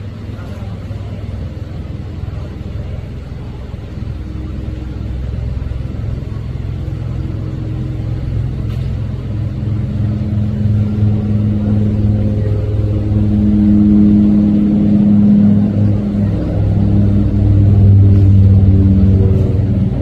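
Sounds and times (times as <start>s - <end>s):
low mechanical drone: 0.0s - 20.0s.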